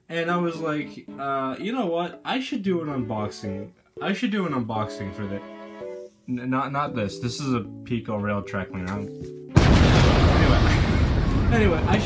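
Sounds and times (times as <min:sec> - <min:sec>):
explosion blast: 0:09.6 - 0:12.0.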